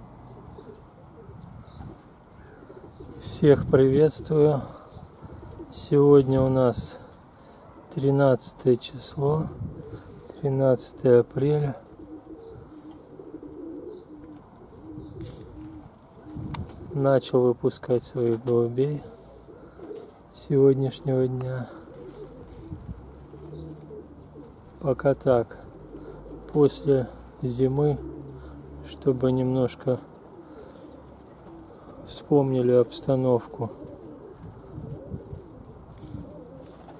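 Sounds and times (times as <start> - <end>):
pigeons cooing: 0.0 - 36.9.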